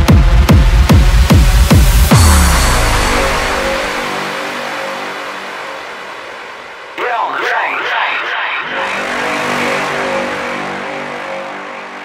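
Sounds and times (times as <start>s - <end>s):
electronic dance beat: 0.0s - 4.2s, 7.0s - 10.0s.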